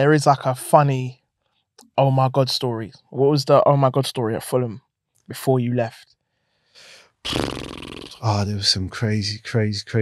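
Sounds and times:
man drawing breath: 0:06.3 - 0:07.2.

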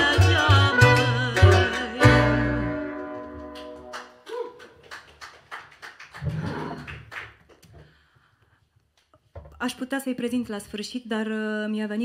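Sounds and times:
audience clapping: 0:00.0 - 0:07.8.

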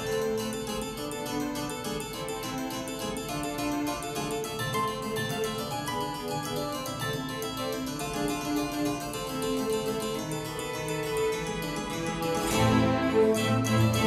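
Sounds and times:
harpsichord music: 0:00.0 - 0:14.0.

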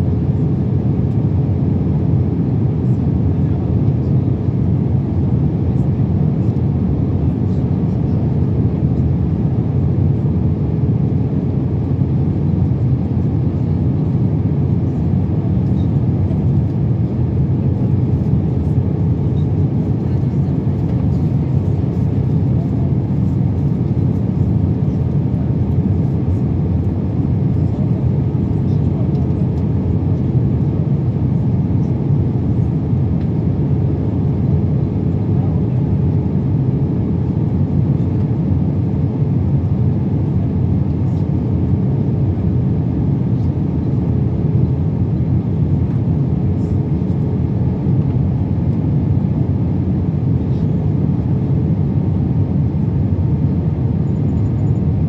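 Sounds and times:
jet engines rumbling: 0:00.0 - 0:55.0.

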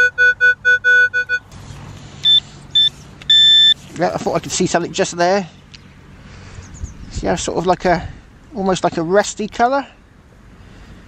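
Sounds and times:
high-pitched beeps: 0:00.0 - 0:01.5, 0:02.2 - 0:03.8
long high tone: 0:00.0 - 0:01.5
short low-pitched beeps: 0:00.0 - 0:01.5, 0:02.2 - 0:03.8.

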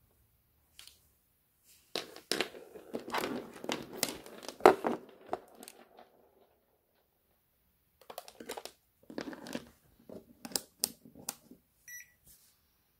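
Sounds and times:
rustling and crinkling: 0:01.6 - 0:07.4.

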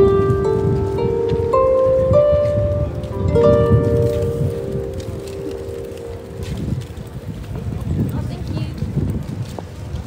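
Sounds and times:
harp notes ringing: 0:00.0 - 0:06.5.

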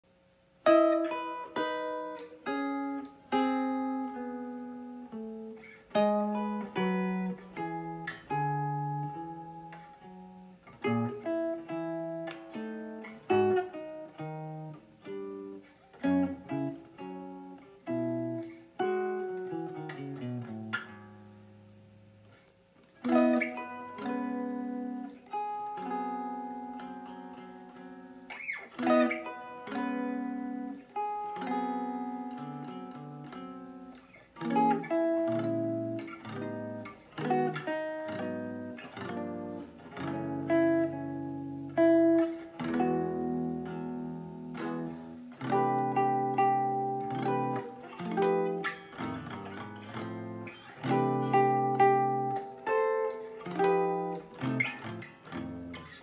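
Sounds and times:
solo jazz guitar: 0:00.0 - 0:56.0.

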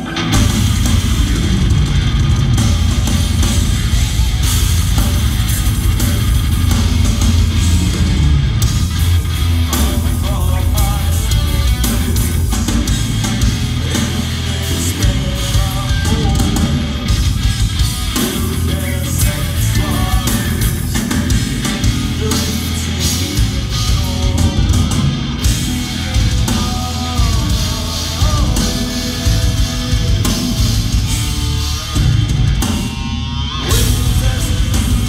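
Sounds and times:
heavy metal band playing: 0:00.0 - 0:35.0.

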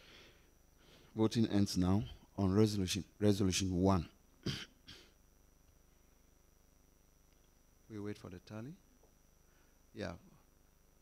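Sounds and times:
man coughing: 0:04.4 - 0:05.2.

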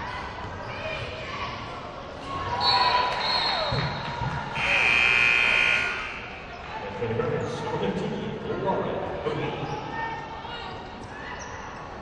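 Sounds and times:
referee's whistle blasts: 0:04.6 - 0:06.4
sneakers squeaking: 0:11.0 - 0:12.0.

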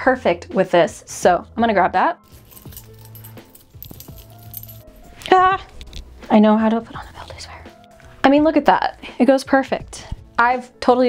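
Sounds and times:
soft background music: 0:00.0 - 0:11.0
metal chain jangling: 0:02.2 - 0:06.0.

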